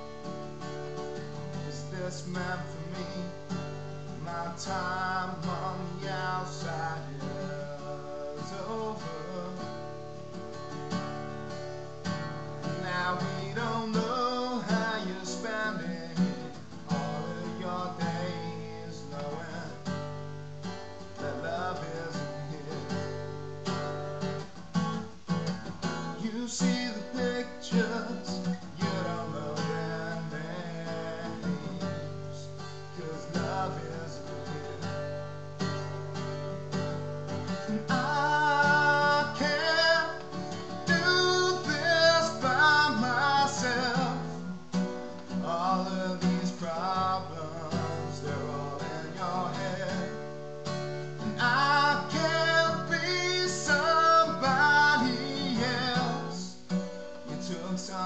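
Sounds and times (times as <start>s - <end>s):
acoustic guitar strumming: 0.0s - 58.0s
man singing: 0.6s - 10.7s, 12.1s - 20.3s, 21.0s - 24.5s, 25.8s - 58.0s.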